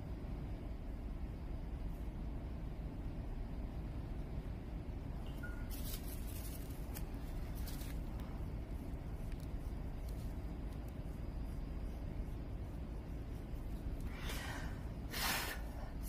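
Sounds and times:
low background rumble: 0.0s - 16.0s
brush strokes on paper: 5.6s - 16.0s.

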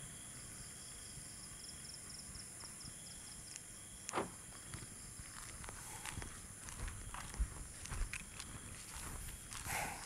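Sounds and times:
footsteps on asphalt: 3.5s - 10.0s.

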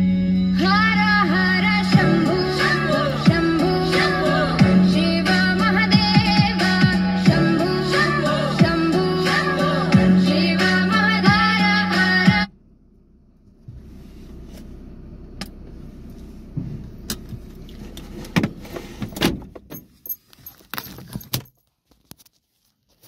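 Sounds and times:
music with singing: 0.0s - 12.5s
car cabin rumble: 0.0s - 20.2s.

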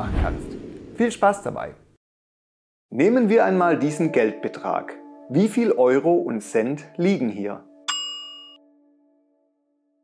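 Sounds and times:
bell-like chime: 7.6s - 9.9s.

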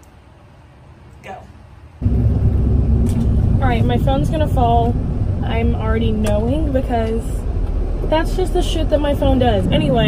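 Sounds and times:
car engine and road rumble: 1.9s - 10.0s.

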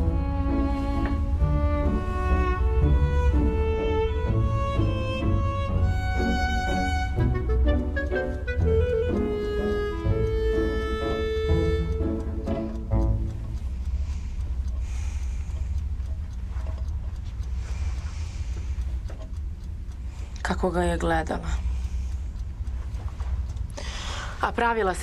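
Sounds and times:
bowed strings playing held notes: 0.0s - 14.0s
steady low rumble: 0.0s - 25.0s.

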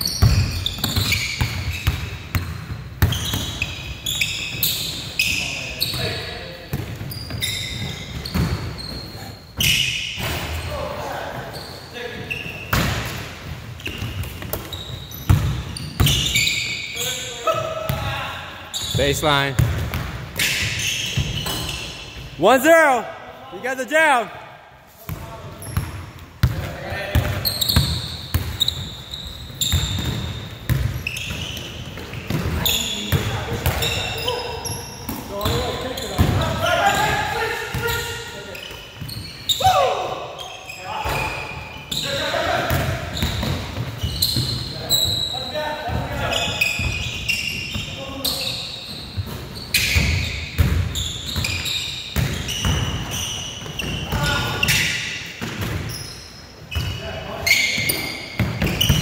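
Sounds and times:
sneakers squeaking: 0.0s - 22.7s, 24.9s - 59.0s
players calling out: 20.8s - 24.5s.

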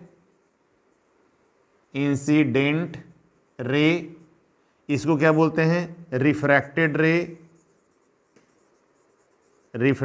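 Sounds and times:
marker writing on whiteboard: 1.8s - 4.4s, 6.2s - 10.0s.

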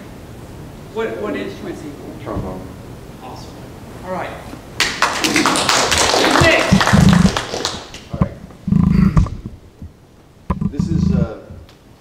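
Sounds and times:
low thumps: 2.2s - 2.9s, 8.1s - 11.7s
small group applauding: 4.8s - 8.1s.

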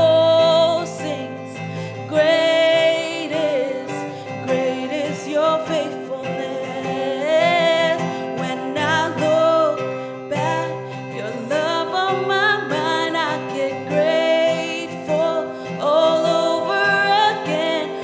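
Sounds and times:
strummed acoustic guitar: 0.0s - 18.0s
woman singing worship song: 0.0s - 18.0s.

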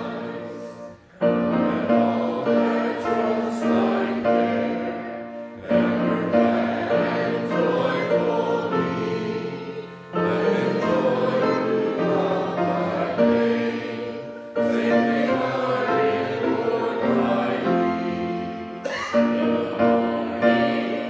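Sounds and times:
congregation singing: 0.0s - 21.0s.

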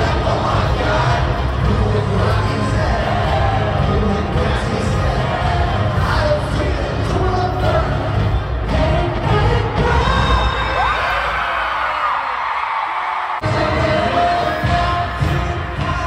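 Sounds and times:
crowd cheering: 0.0s - 16.0s
pop concert music: 0.0s - 16.0s.

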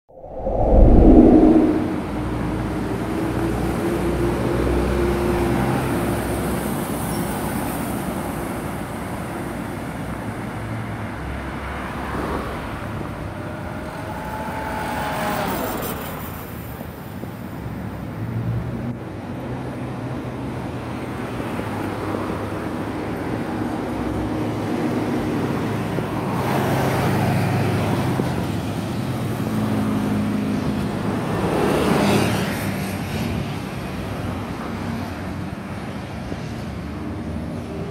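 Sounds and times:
vehicles passing: 0.1s - 6.7s, 9.6s - 35.4s
road traffic noise: 0.1s - 37.9s
bus passing close: 0.4s - 37.9s.

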